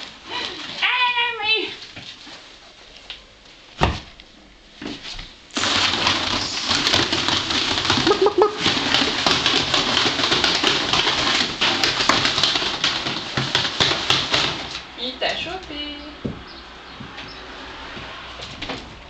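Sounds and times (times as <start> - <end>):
ferrets scrabbling in plastic tube: 0.0 - 3.1, 4.8 - 16.6.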